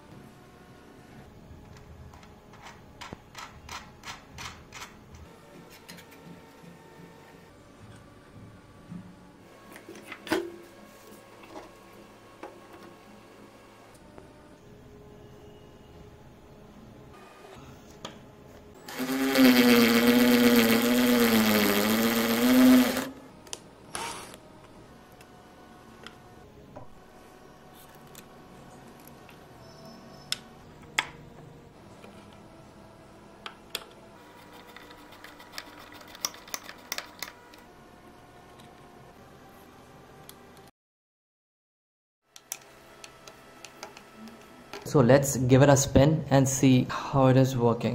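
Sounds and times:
electric drill boring through plastic: 18.8 - 23.2, 23.9 - 24.4.

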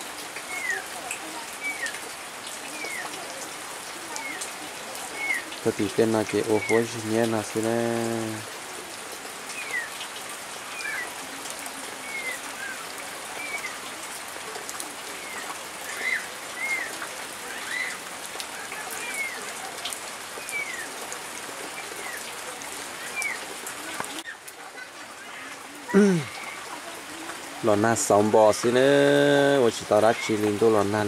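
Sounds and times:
steady rain falling: 0.0 - 31.0.

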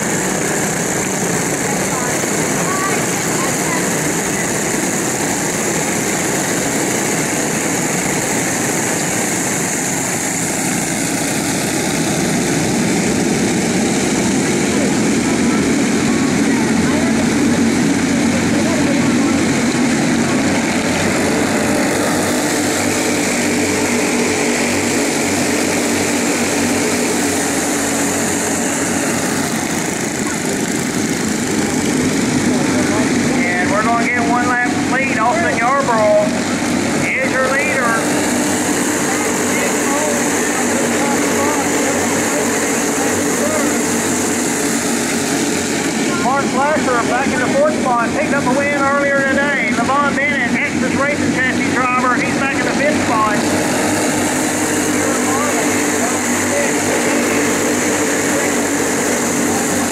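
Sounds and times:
go-kart engines racing: 0.0 - 59.9.

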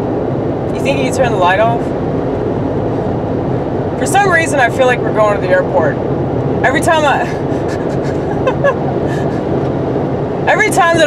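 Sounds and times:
car road and engine noise: 0.0 - 11.0
person laughing: 7.2 - 9.6.

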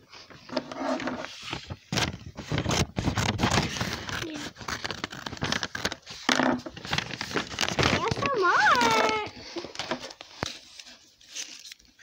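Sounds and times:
objects being handled: 0.1 - 12.0.

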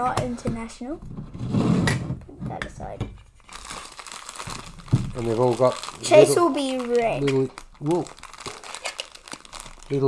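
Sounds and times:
plastic bag crinkling: 3.5 - 10.0.

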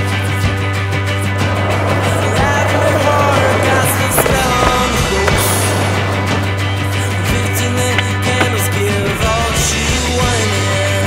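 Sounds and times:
rock music: 0.0 - 11.0
skateboard trucks scraping concrete: 0.0 - 11.0
skateboard knocks: 1.4 - 10.6.

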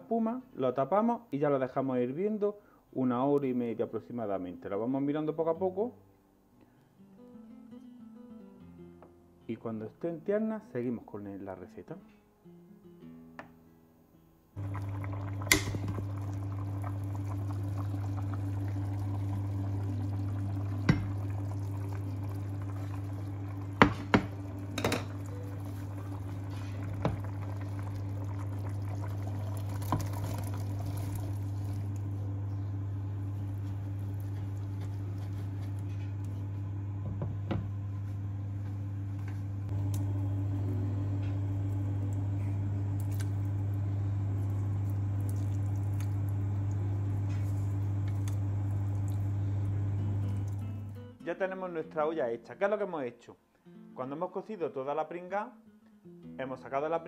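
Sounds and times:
broth bubbling and sloshing: 14.6 - 32.3, 43.0 - 50.8
steady low hum: 14.6 - 51.0.

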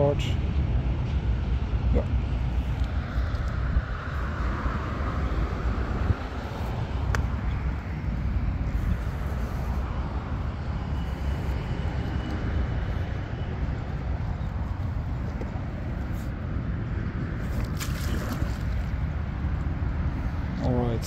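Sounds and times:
wind on microphone: 0.6 - 21.0.

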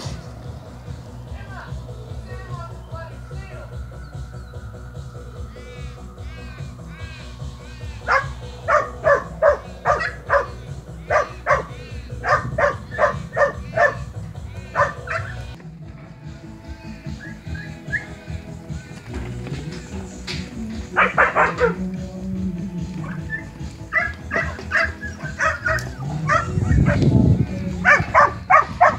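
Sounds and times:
dog barking: 8.0 - 15.4, 20.9 - 21.8, 23.0 - 27.1, 27.8 - 28.9.

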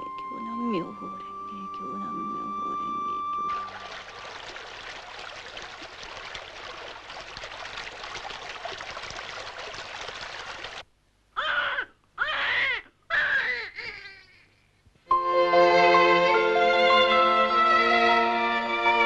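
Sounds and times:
stream running: 1.8 - 10.9
baby crying: 11.4 - 14.6.

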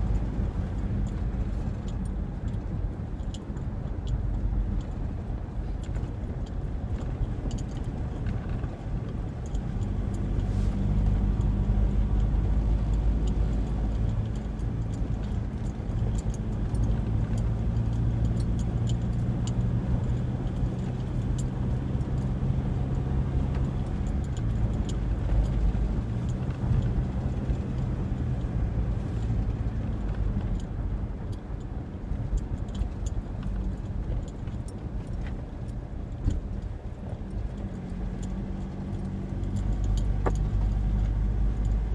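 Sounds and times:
car engine and road noise: 0.0 - 41.9.

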